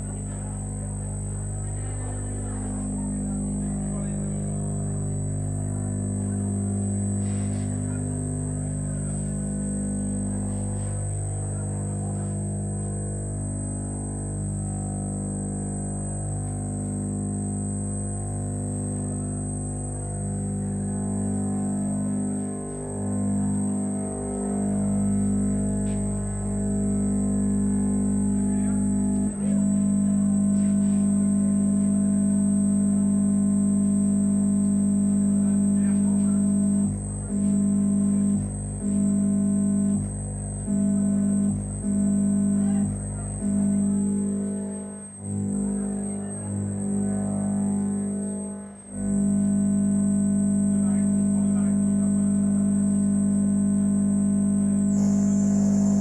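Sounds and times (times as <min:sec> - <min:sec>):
steady high whine: 0:00.0 - 0:56.0
sustained low drone tones: 0:00.0 - 0:56.0.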